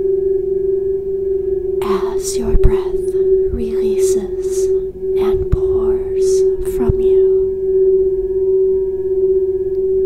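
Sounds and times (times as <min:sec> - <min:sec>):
singing bowl tone: 0:00.0 - 0:10.0
faint gliding voice-like sounds: 0:01.8 - 0:07.6.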